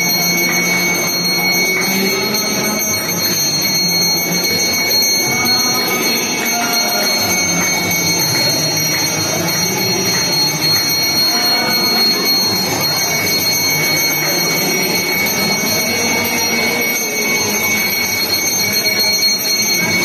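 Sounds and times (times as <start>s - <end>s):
crowd din: 0.0s - 20.0s
temple bells ringing: 0.0s - 20.0s.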